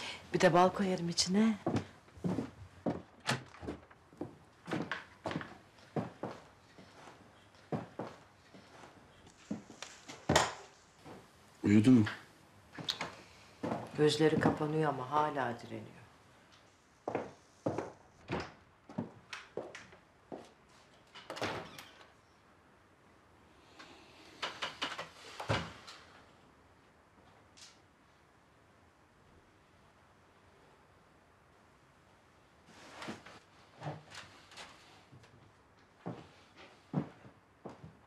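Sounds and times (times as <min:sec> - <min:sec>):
footsteps crossing a room: 0:00.8 - 0:11.5, 0:12.7 - 0:14.9, 0:16.4 - 0:21.1, 0:32.6 - 0:38.0.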